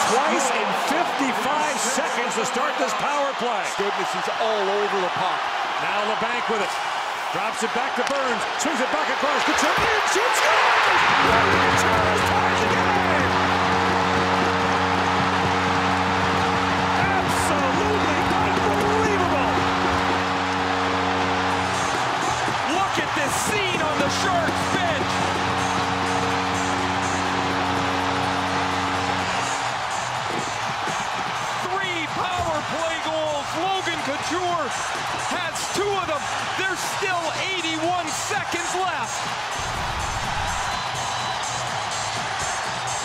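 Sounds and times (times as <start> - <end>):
crowd cheering and whooping: 0.0 - 43.0
goal horn blasts: 10.9 - 29.7.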